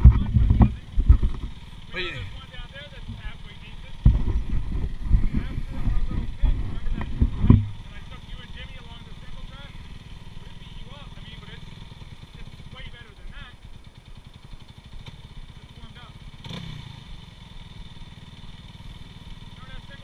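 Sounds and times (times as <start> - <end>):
dirt bike engines idling: 0.0 - 20.0.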